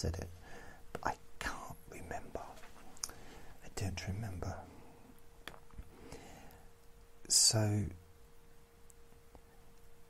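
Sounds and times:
man whispering: 1.0 - 5.0.

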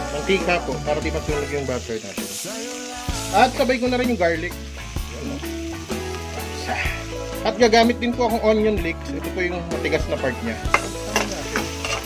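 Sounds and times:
background music with bass: 0.0 - 12.0
butter and garlic sizzling: 0.0 - 12.0.

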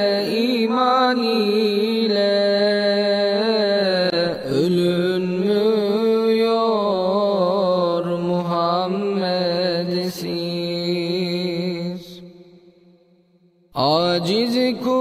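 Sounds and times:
person singing a hymn unaccompanied: 13.8 - 15.0.

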